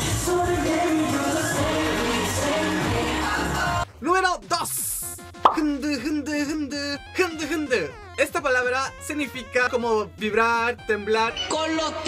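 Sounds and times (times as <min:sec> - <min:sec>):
low background music: 0:00.0 - 0:12.0
man speaking: 0:04.0 - 0:12.0.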